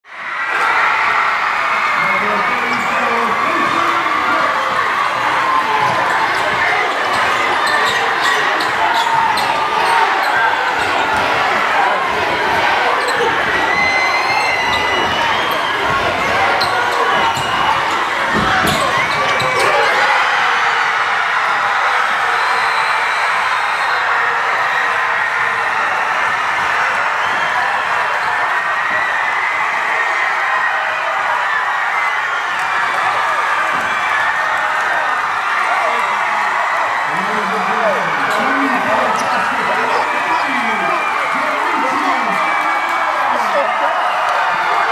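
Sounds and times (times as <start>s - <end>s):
crowd shouting and cheering: 0.0s - 44.9s.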